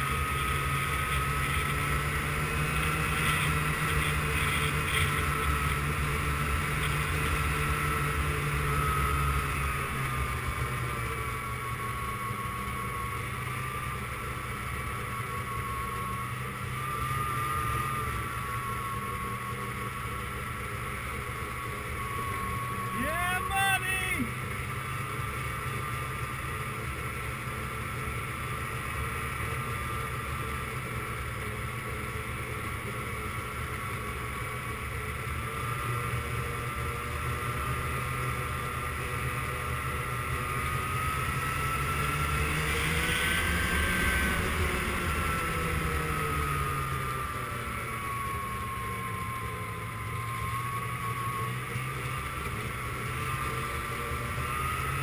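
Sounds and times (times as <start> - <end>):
person shouting: 22.9 - 24.3.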